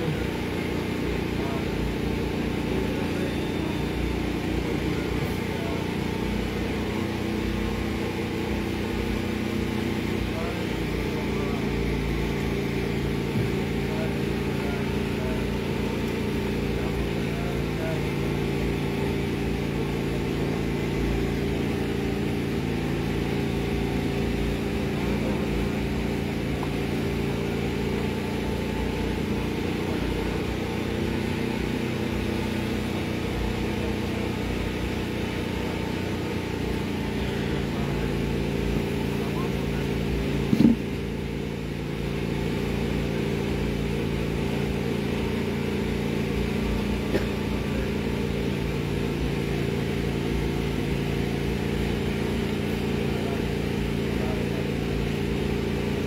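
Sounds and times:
machinery humming: 0.0s - 56.0s
short knock: 40.5s - 40.8s.

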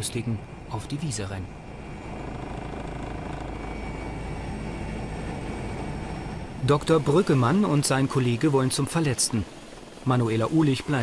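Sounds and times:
helicopter rotor and engine: 0.0s - 11.0s.

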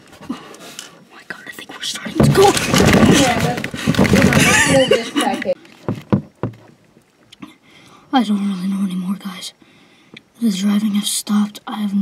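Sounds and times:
dull thumps: 2.0s - 6.8s.

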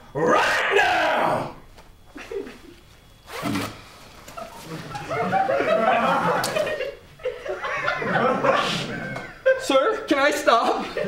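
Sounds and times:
people laughing: 2.1s - 2.8s, 4.3s - 11.0s
jacket zipper pulled open: 3.2s - 3.8s.

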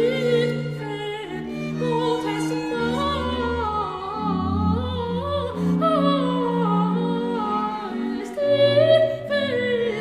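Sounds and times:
strings playing: 0.0s - 10.0s.

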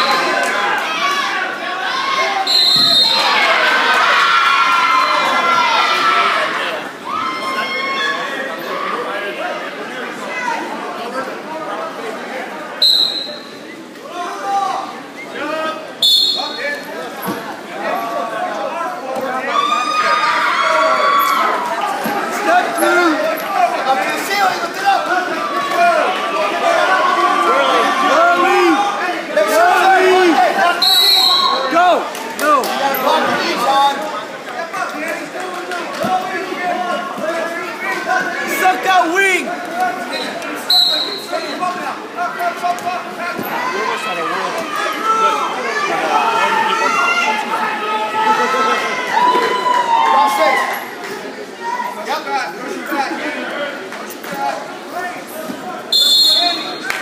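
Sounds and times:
spectators shouting encouragement: 0.0s - 9.4s, 17.8s - 53.4s.

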